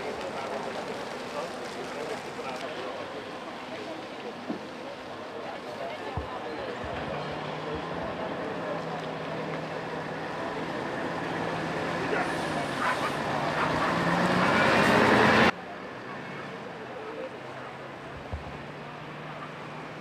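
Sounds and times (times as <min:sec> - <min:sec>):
bus engine pulling away: 0:00.0 - 0:20.0
street traffic hum: 0:00.0 - 0:20.0
voices: 0:00.0 - 0:20.0.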